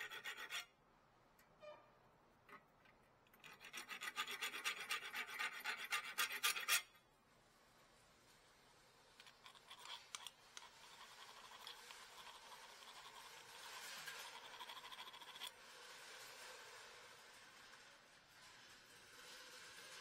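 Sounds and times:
metal hand file rasping: 0:00.0 - 0:00.7, 0:03.4 - 0:07.0, 0:09.6 - 0:15.5.

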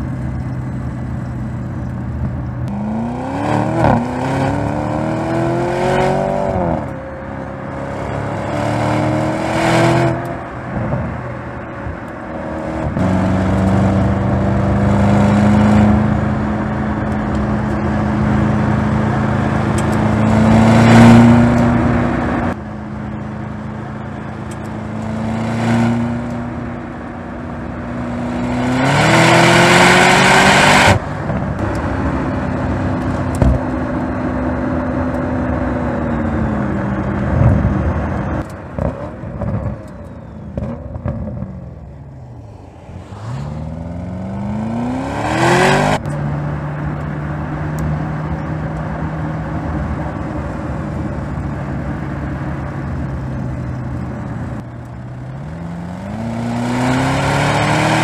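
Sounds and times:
car engine revving: 0:02.6 - 0:11.2, 0:11.9 - 0:22.6, 0:27.6 - 0:34.2, 0:40.5 - 0:58.0.

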